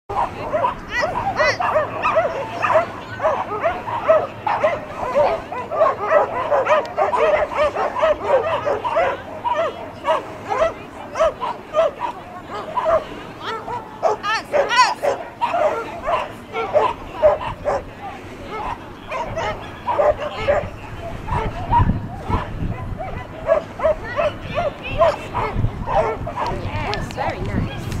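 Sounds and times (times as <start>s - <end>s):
dog barking: 0.1s - 17.9s, 18.5s - 27.0s
people talking: 0.1s - 28.0s.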